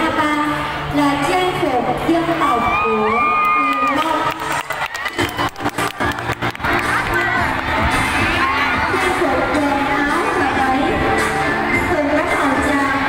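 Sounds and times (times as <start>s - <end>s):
music: 0.0s - 13.0s
children cheering and shouting: 2.6s - 4.2s, 4.8s - 13.0s.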